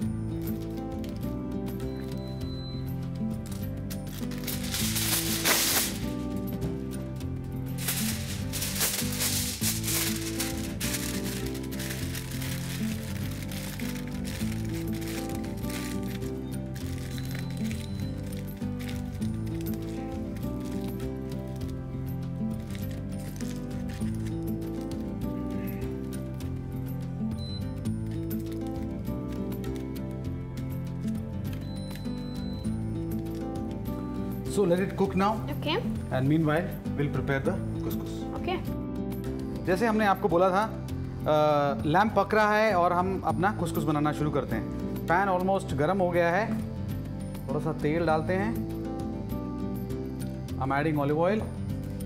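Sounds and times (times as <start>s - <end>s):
background music: 0.0s - 52.0s
aluminium foil crinkling: 3.4s - 6.1s, 7.8s - 26.0s.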